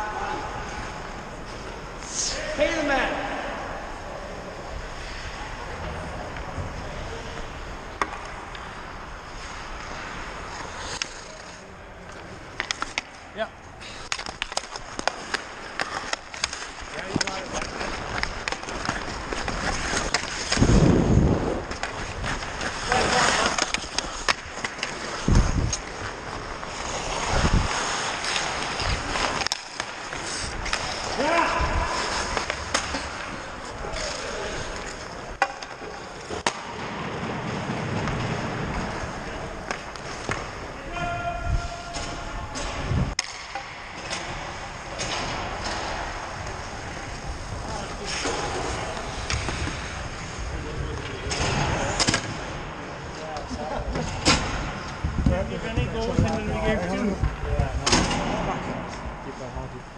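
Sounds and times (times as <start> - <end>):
ice skates scraping on ice: 4.2 - 40.8, 41.5 - 57.4
hockey sticks and puck clacking: 4.6 - 59.8.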